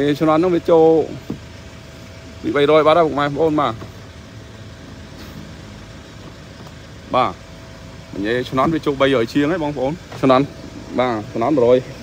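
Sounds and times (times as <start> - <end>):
faint steady whine: 0.0 - 12.0
van engine idling: 0.0 - 12.0.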